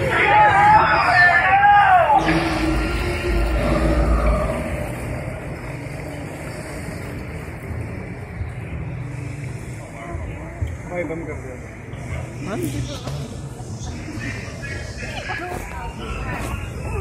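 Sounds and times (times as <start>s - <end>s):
boat rumble: 2.2s - 9.3s.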